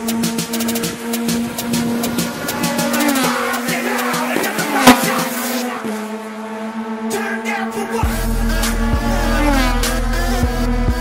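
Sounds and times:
background music: 0:00.0 - 0:11.0
race car engine at speed: 0:00.0 - 0:11.0.

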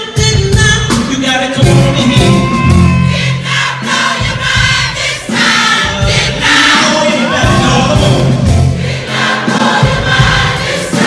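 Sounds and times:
soul band playing: 0:00.0 - 0:11.0
audience singing along: 0:02.9 - 0:11.0.

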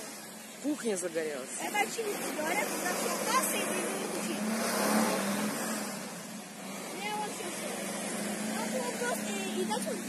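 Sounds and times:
engine hum: 0:00.0 - 0:10.0.

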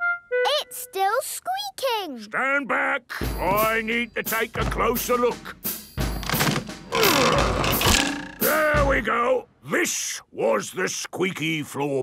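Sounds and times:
falling wooden creak: 0:06.2 - 0:08.4
wood scraping: 0:06.2 - 0:08.6.

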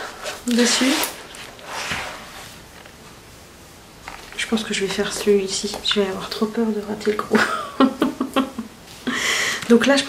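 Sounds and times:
paper pages rustling: 0:00.0 - 0:03.1, 0:04.0 - 0:06.5.

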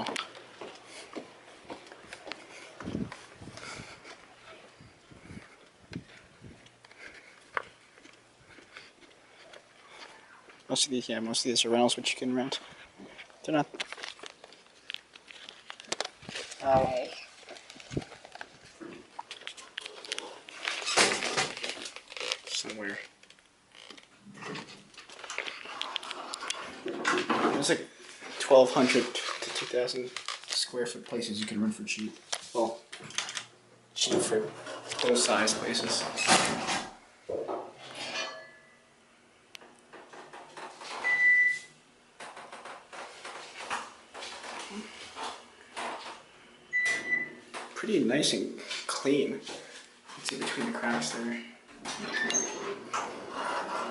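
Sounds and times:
microphone rubbing against clothing: 0:02.5 - 0:06.6.

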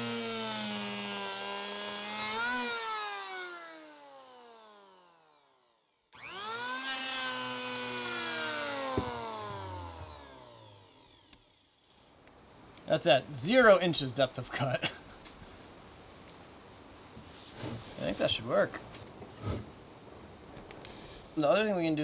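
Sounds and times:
power planer whining: 0:00.0 - 0:11.8.

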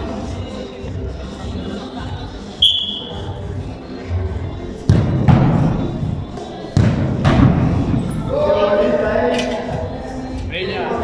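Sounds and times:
music: 0:00.0 - 0:11.0
voices: 0:00.0 - 0:11.0
high whistle-like tone: 0:02.6 - 0:03.3.

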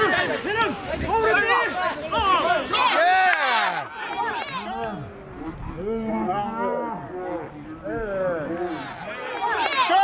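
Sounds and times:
people shouting: 0:00.0 - 0:05.2, 0:08.4 - 0:10.0.

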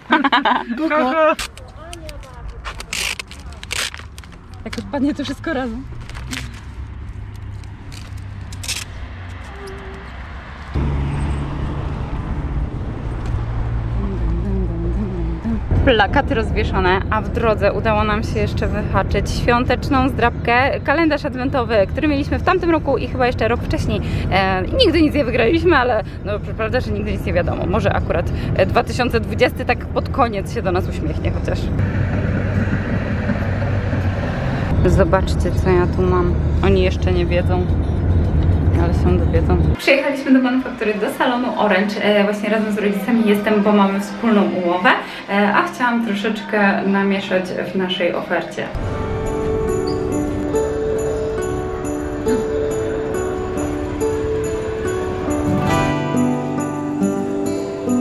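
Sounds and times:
traffic rumble: 0:00.0 - 0:58.0
tram passing by: 0:01.4 - 0:58.0
low rumble inside car: 0:13.0 - 0:39.8.

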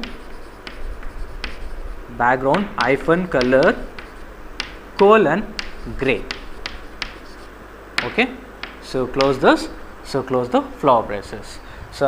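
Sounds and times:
chalk tapping on board: 0:00.0 - 0:01.8, 0:02.5 - 0:09.8
chalk scratching on chalkboard: 0:00.0 - 0:04.8, 0:05.6 - 0:07.6, 0:08.6 - 0:09.8.

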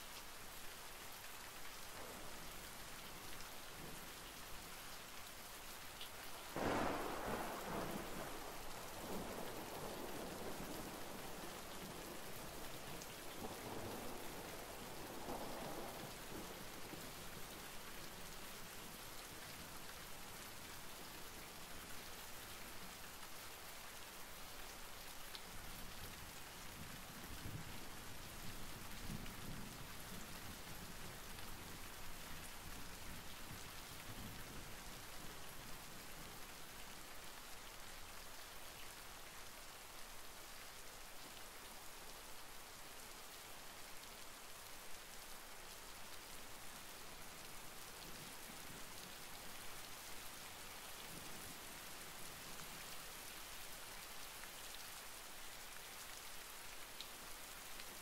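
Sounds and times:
steady rain: 0:00.0 - 0:58.0
thunder rumbling: 0:06.6 - 0:09.7.

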